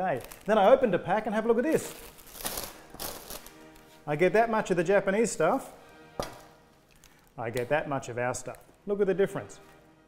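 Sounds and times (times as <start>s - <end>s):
plastic bag crinkling: 0.0s - 4.0s, 6.8s - 8.8s
faint background music: 0.0s - 10.0s.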